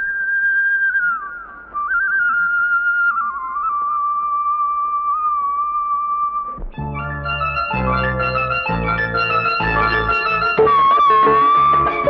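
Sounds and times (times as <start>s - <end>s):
whistled melody: 0.0s - 12.0s.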